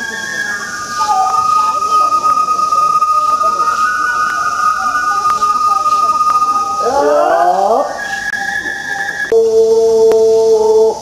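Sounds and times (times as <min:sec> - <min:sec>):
high bamboo flute: 0:00.0 - 0:11.0.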